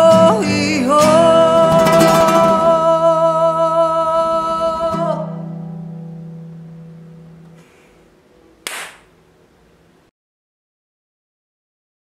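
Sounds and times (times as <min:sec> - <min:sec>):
acoustic guitar and charango: 0:00.0 - 0:07.9
sharp click: 0:08.6 - 0:09.1.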